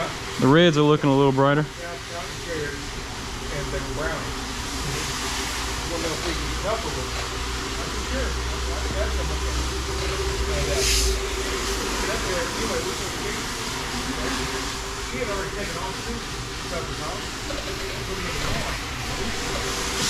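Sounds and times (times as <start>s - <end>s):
low motor hum: 0.0s - 20.0s
floor machine brush scrubbing: 1.9s - 20.0s.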